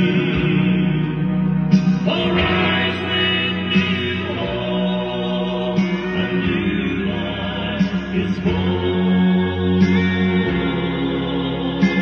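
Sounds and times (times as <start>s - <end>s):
instrumental backing: 0.0s - 12.0s
male vocal group singing harmony: 0.0s - 12.0s.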